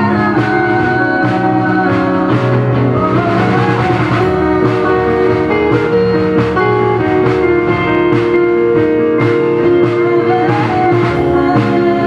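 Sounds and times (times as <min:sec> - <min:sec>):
keyboard chords: 0:00.0 - 0:12.0
plucked strings: 0:00.0 - 0:12.0.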